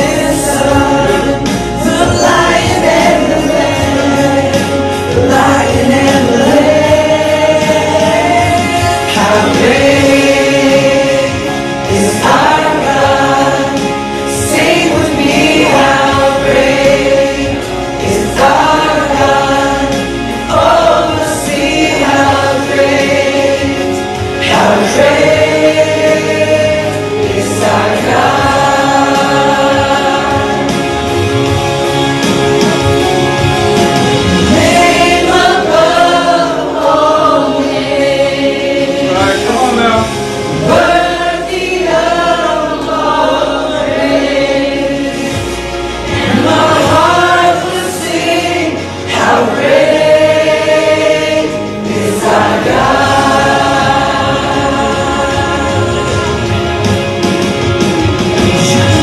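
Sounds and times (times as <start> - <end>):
women singing worship song amplified: 0.0 - 59.0.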